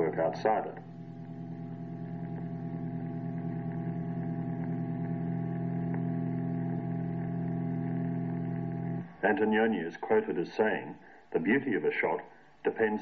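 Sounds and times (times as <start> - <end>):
steady droning hum: 0.0 - 13.0.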